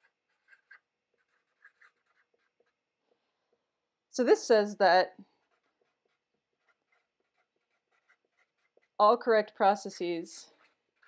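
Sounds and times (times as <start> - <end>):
marker scratching on paper: 0.0 - 2.8, 5.3 - 9.0, 10.4 - 11.0.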